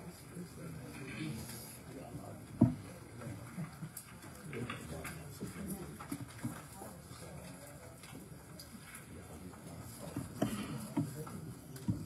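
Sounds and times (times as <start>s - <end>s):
murmur of people talking: 0.0s - 12.0s.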